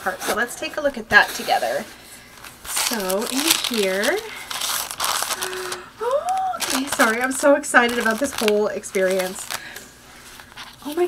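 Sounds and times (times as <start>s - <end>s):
paper bag crinkling: 1.3s - 11.0s.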